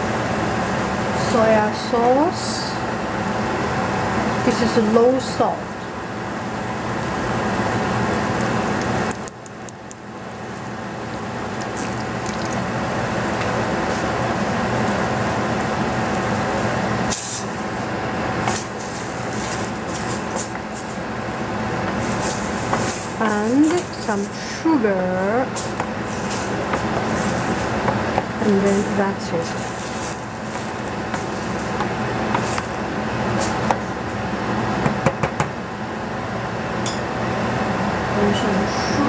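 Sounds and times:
mushrooms sizzling in frying pan: 5.5s - 34.4s
sauce being poured: 11.5s - 12.7s.

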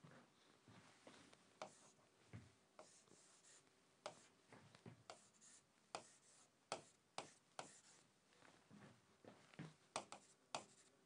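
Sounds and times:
writing strokes on a board: 1.6s - 2.0s, 2.8s - 4.4s, 5.0s - 8.0s, 9.9s - 11.0s.

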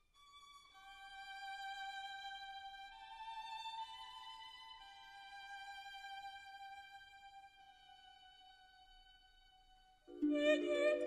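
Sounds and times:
slow violin music: 0.0s - 11.0s.

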